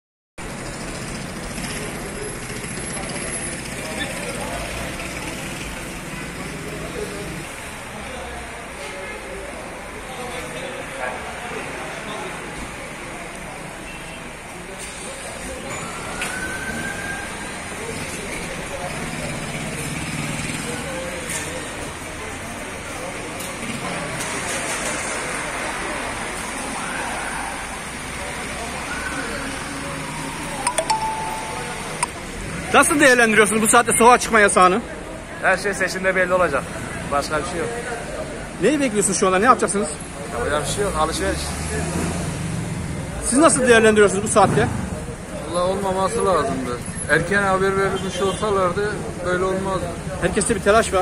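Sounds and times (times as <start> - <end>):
background hubbub: 0.4 - 51.0
crowd chatter: 0.4 - 51.0
faint indistinct voices: 0.4 - 51.0
street traffic noise: 0.4 - 51.0.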